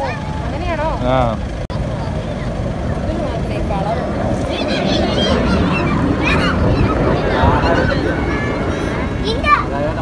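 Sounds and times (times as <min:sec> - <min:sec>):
crowd talking and calling out: 0:00.0 - 0:10.0
jet aircraft rumble: 0:00.0 - 0:10.0.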